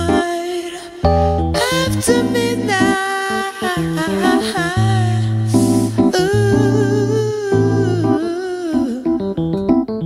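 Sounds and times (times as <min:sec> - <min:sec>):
electric piano chords: 0:00.0 - 0:00.4, 0:01.0 - 0:10.0
wordless soul vocal: 0:00.0 - 0:09.4
low bass note: 0:04.6 - 0:08.2.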